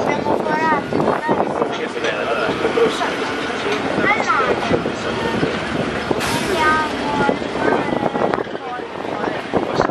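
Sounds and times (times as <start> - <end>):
passengers chattering: 0.0 - 9.9
road train engine rumbling: 0.0 - 9.9.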